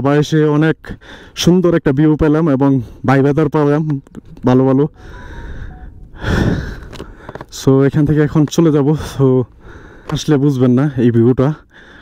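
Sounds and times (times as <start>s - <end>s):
person exhaling: 5.0s - 7.3s.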